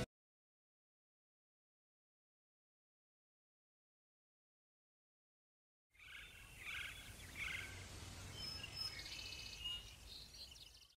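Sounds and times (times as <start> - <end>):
birds chirping: 6.0 - 11.0.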